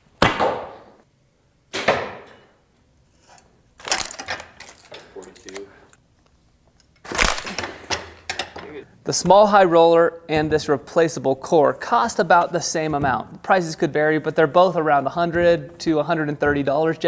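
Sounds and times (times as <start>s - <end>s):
arrow hitting foam target: 0.2s - 0.8s, 1.7s - 2.3s.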